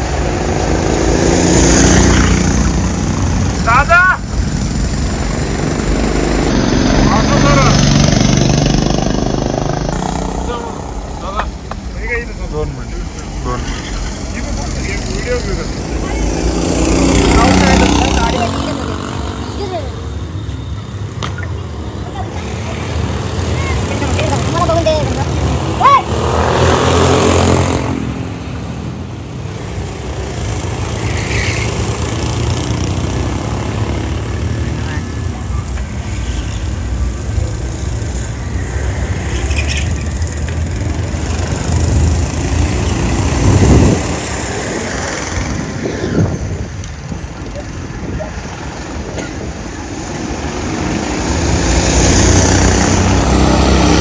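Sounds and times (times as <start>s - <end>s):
go-kart engines running: 0.0s - 54.0s.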